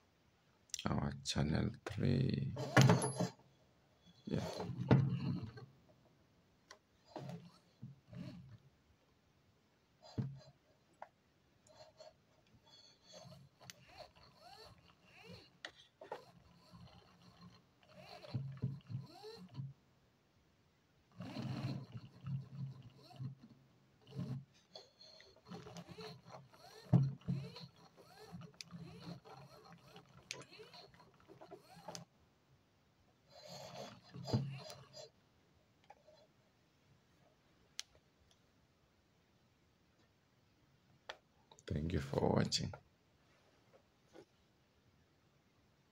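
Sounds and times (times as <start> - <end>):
wiper motor whirring: 4.3 - 5.7, 7.1 - 8.6, 12.7 - 19.8, 21.1 - 32.1, 33.3 - 35.2.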